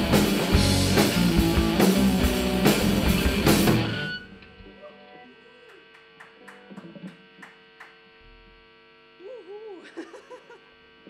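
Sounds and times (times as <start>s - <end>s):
live rock band playing: 0.0s - 4.3s
amplifier hum: 0.0s - 11.0s.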